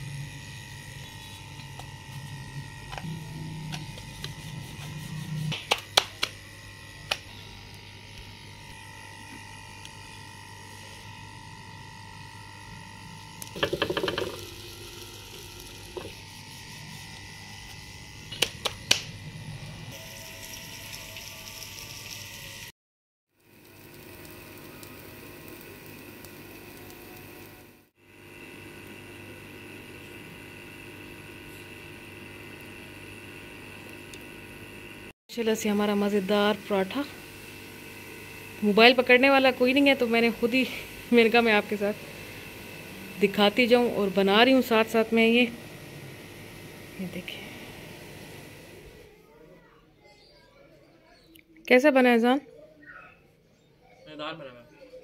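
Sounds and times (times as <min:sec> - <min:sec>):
rolling pin knocking on board: 0:13.6 - 0:14.4.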